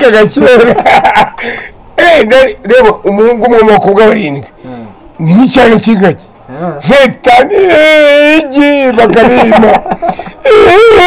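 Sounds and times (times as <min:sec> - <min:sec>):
man laughing: 0:00.2 - 0:01.7, 0:07.3 - 0:11.0.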